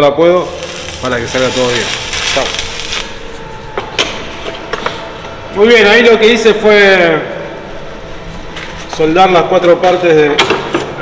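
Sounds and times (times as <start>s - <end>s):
arc welding crackling and hissing: 0.0s - 10.3s.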